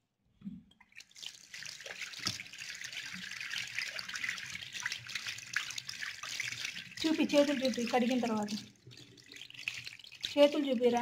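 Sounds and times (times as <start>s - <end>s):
water splashing over hands: 0.9s - 11.0s.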